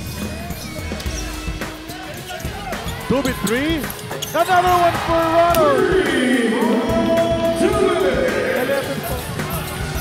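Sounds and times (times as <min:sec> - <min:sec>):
music over sound system: 0:00.0 - 0:10.0.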